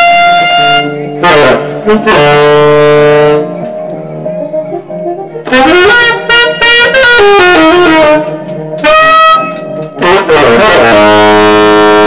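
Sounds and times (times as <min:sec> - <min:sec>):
tenor saxophone playing: 0:00.0 - 0:03.7, 0:05.1 - 0:12.0.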